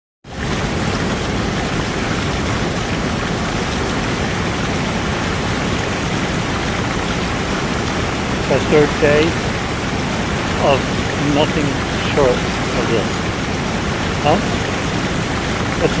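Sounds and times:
heavy rain falling: 0.3 - 16.0.

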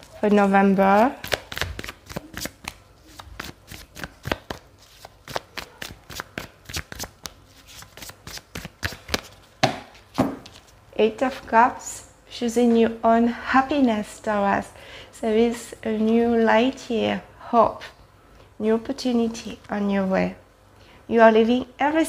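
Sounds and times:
cards being shuffled: 0.9 - 10.7.

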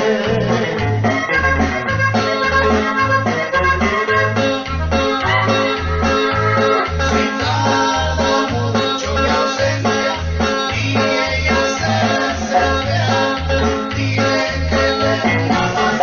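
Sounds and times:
band playing live: 0.0 - 16.0.

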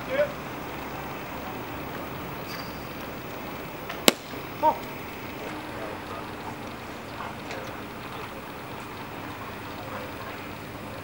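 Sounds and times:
baseball smacking into glove: 3.9 - 4.4.

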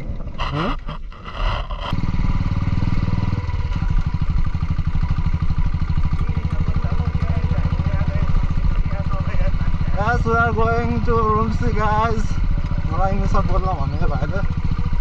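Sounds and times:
motorcycle engine running: 0.0 - 15.0.

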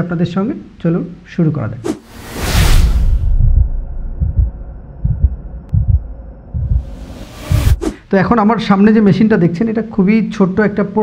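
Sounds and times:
deep bass thumps: 3.2 - 7.9
faint hum: 3.3 - 8.5.

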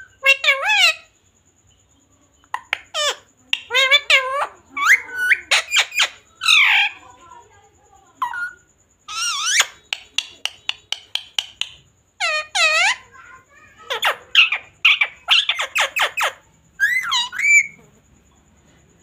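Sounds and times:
parakeet calling and chattering: 0.0 - 1.4, 2.4 - 18.2.

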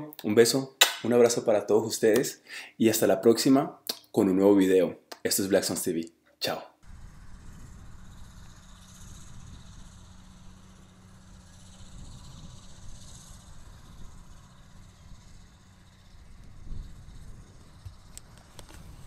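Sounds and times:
steady low rumble: 6.8 - 19.0.

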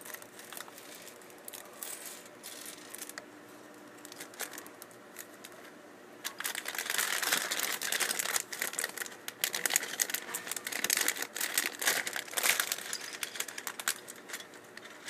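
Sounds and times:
plastic bag crinkling: 0.0 - 3.2, 4.0 - 15.0.

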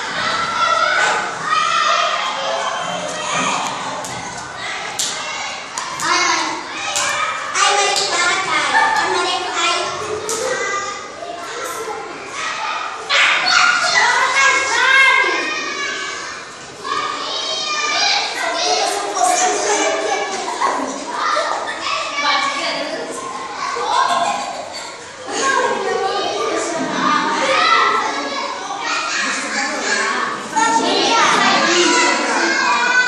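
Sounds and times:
children calling and shouting: 0.0 - 33.0.

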